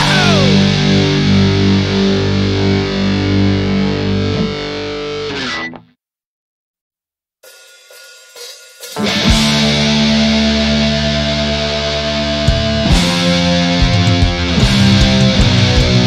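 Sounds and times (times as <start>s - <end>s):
distorted electric guitar chord: 0.0s - 5.5s, 9.0s - 16.0s.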